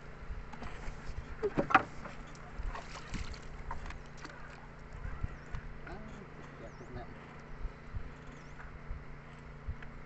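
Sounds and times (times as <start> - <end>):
small water splashes: 1.9 - 5.2
wind rumble on microphone: 4.8 - 6.0, 6.8 - 10.0.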